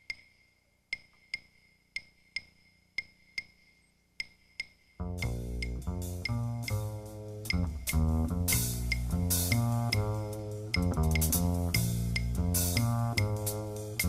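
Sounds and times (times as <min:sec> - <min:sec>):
plucked upright bass: 0:05.0 - 0:14.0.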